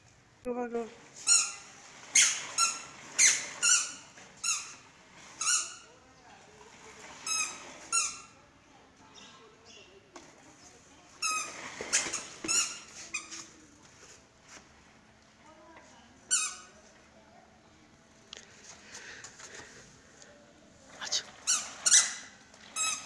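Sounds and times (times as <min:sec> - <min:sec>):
high plastic squeaks: 0:01.2 - 0:05.9, 0:11.2 - 0:13.5, 0:21.4 - 0:23.0.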